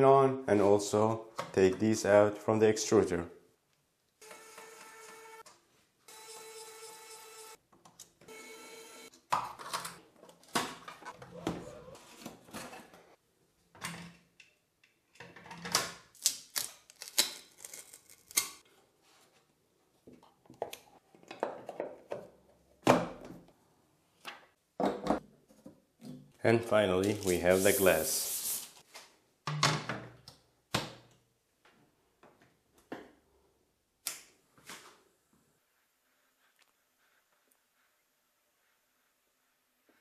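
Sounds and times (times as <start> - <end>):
electric screwdriver whirring: 4.2 - 5.4.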